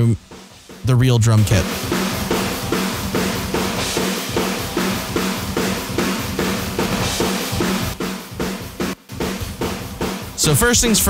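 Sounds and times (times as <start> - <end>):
drum kit kick and snare hits: 0.0 - 11.0.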